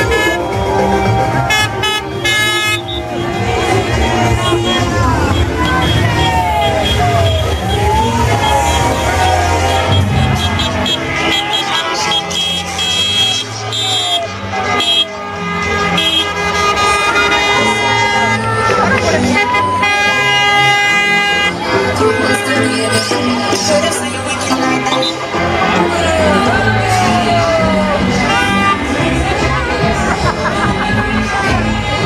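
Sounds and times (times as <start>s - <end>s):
vehicle horns sounding: 0.0s - 26.2s, 28.1s - 29.4s
music: 0.0s - 32.0s
truck engines passing slowly: 0.0s - 32.0s
voices: 0.0s - 32.0s.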